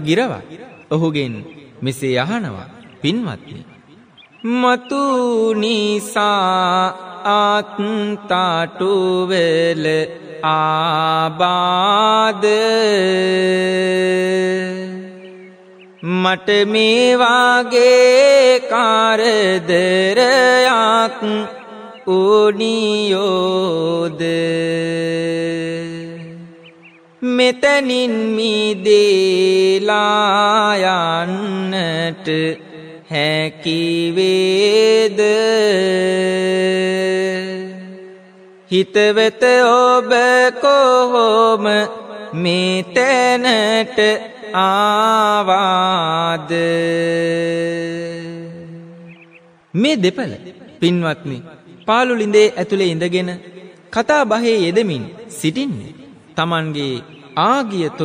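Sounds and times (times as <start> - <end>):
man chanting verse: 0.0 - 15.2, 16.0 - 38.1, 38.7 - 49.1, 49.7 - 58.0.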